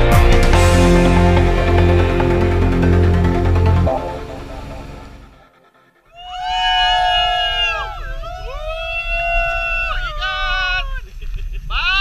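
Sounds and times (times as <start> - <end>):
background music: 0.0 - 6.0
group of people cheering: 6.1 - 10.8.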